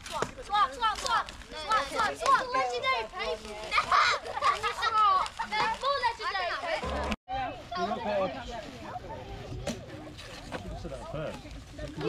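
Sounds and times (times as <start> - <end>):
children chattering: 0.1 - 12.0.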